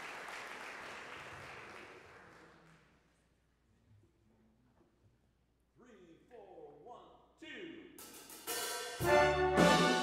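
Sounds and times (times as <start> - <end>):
cymbal and hi-hat: 8.0 - 9.3
big band jazz: 8.0 - 10.0.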